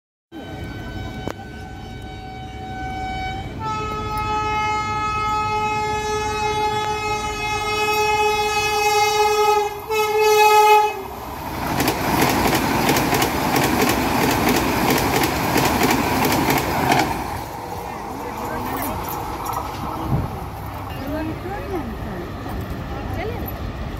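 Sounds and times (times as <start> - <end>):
locomotive air horn blasts: 0.4 - 11.2
train rushing past: 0.4 - 23.9
wheels clattering over rail joints: 11.6 - 23.6.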